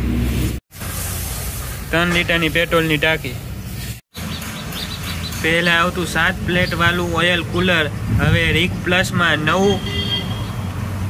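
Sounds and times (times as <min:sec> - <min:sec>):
man speaking: 0:01.9 - 0:03.4, 0:05.4 - 0:09.9.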